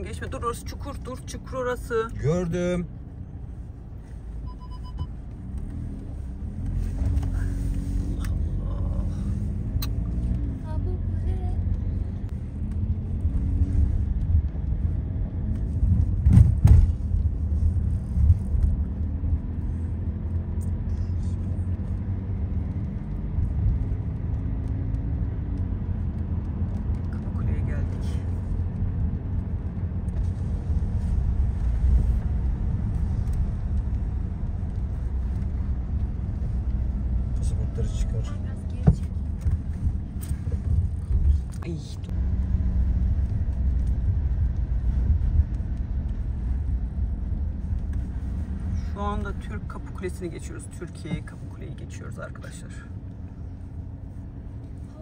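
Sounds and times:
engine and tyre rumble: 0:00.0 - 0:55.0.

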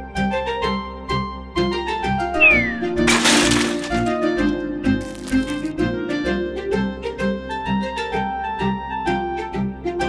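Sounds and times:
plucked-string background music: 0:00.0 - 0:10.0
short falling tone: 0:02.4 - 0:03.1.

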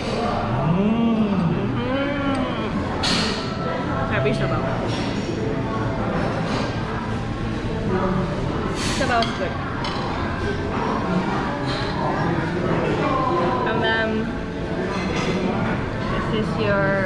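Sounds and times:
people's voices: 0:00.0 - 0:04.7
steady low hum: 0:00.0 - 0:08.8.

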